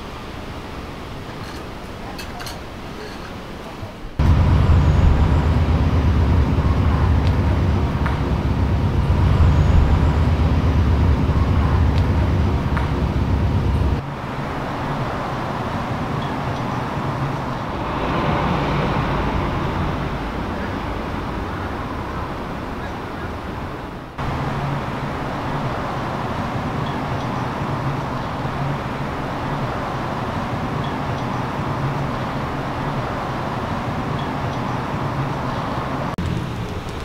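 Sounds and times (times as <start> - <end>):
low rumble of road vehicles: 0.0 - 37.0
traffic hum: 0.0 - 37.0.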